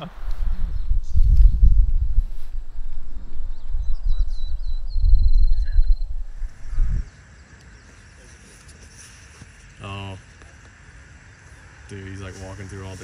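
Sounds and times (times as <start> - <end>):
wind buffeting microphone: 0.0 - 7.2.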